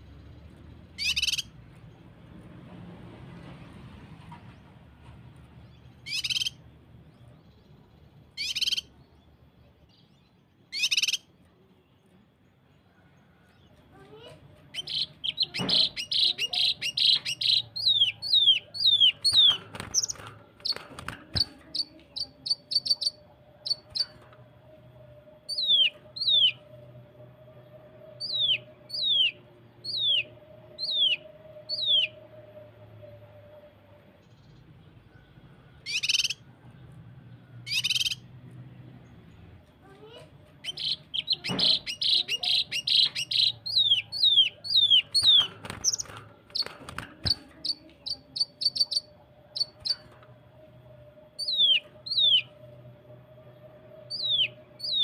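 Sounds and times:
harsh bird rasps: 0.9 - 1.6, 6.0 - 6.6, 8.4 - 8.9, 10.7 - 11.3, 14.7 - 24.2, 35.8 - 36.5, 40.6 - 50.1.

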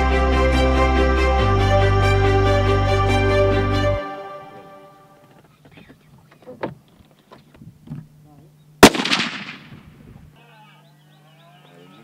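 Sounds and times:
rifle shot with echo: 8.8 - 10.0.

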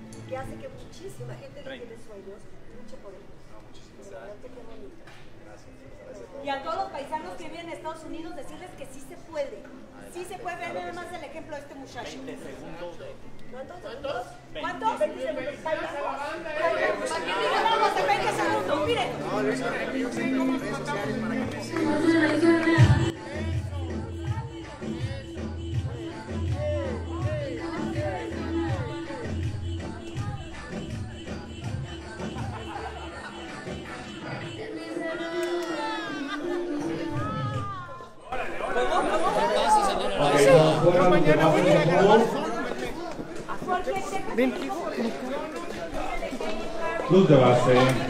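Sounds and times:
people chattering: 0.0 - 48.0.

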